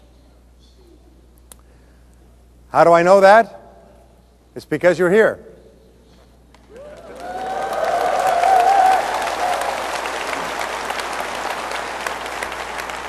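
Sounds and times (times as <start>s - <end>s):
audience applauding: 6.6s - 13.0s.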